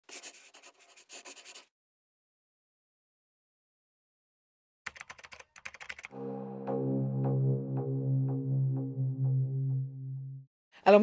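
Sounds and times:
pen scratching on paper: 0.0 - 1.7.

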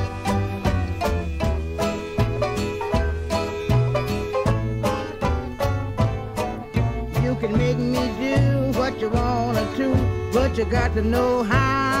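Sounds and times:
bass line: 0.0 - 12.0
jug band playing: 0.0 - 12.0
plucked banjo: 0.0 - 12.0.

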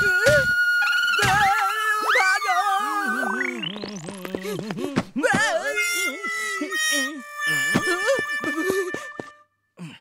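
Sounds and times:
cartoon background music: 0.0 - 4.3.

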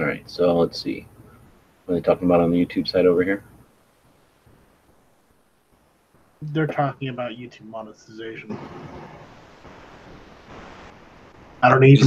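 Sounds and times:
open microphone hiss: 0.0 - 12.0.

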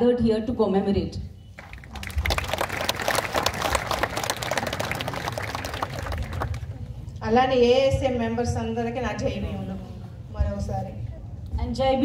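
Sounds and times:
audience applauding: 1.6 - 6.8.

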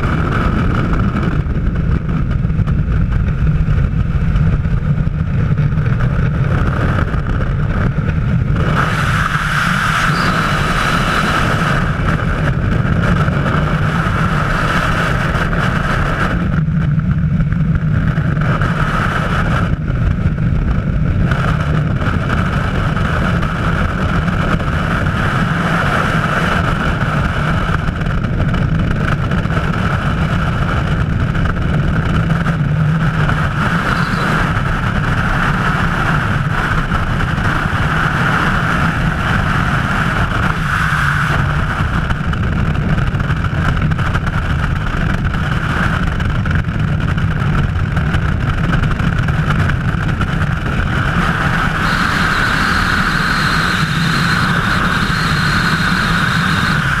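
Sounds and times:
wind roaring past microphone: 0.0 - 57.0
constant whistle: 9.8 - 11.3, 33.6 - 34.6, 51.6 - 57.0.

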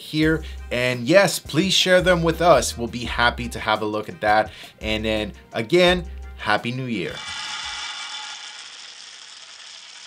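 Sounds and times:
coffee beans pouring and clattering: 7.1 - 10.0.

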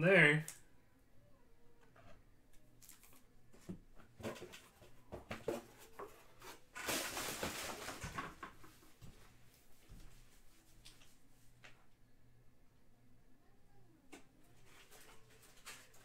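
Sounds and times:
packaging rustling: 5.4 - 8.4.

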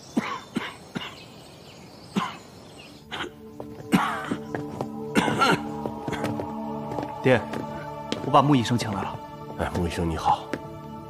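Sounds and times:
soft background music: 2.0 - 11.0
man coughing: 2.2 - 2.4, 3.1 - 4.5, 5.1 - 6.2.

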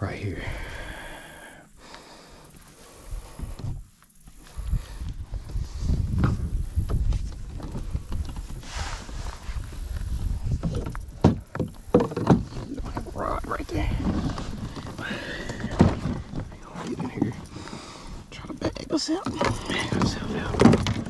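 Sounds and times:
knocks and scrapes on plastic kayak: 5.5 - 17.9, 18.6 - 21.0.

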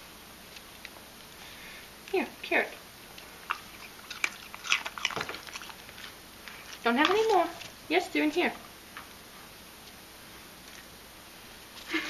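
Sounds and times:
pet crunching raw carrot: 3.0 - 7.9.

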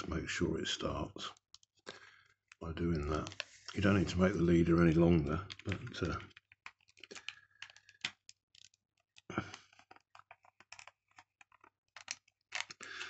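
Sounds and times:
film cassette clicks and rustles: 5.5 - 13.0.

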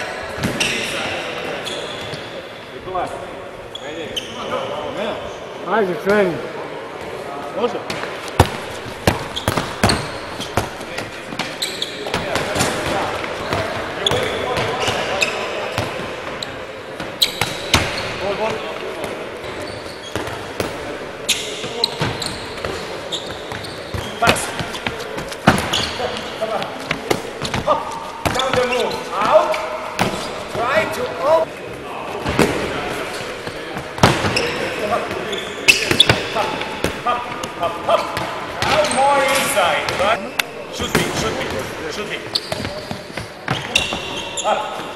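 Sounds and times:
voices talking: 0.0 - 44.9
balls bouncing on wooden floor: 7.9 - 15.1, 21.6 - 30.9.

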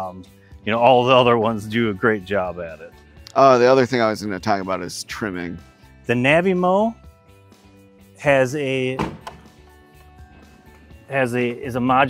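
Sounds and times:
quiet background music: 0.0 - 12.0
knock on plastic body: 9.0 - 9.5.

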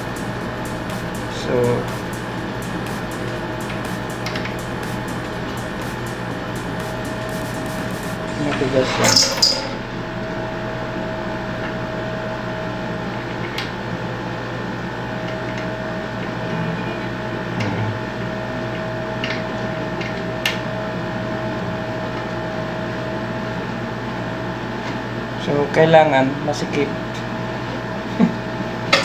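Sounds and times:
steady machine hum: 0.0 - 29.0.

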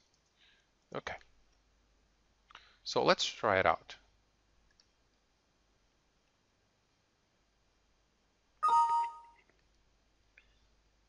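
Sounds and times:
two-note descending alert chime: 8.6 - 9.4.

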